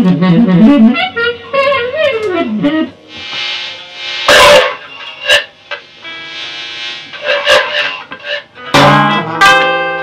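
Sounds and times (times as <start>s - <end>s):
electric guitar ringing tones: 0.8s - 10.0s
harsh noisy guitar bursts: 3.1s - 10.0s.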